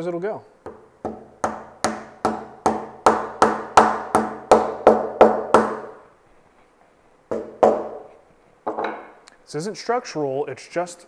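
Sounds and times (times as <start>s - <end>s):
mallet tapping wooden plug: 0.6s - 6.0s, 7.3s - 8.1s.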